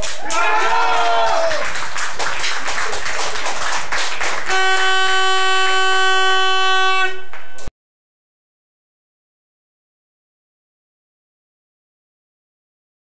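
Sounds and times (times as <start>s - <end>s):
spectators clapping: 0.0s - 5.4s
horn blowing steady note: 4.3s - 7.7s.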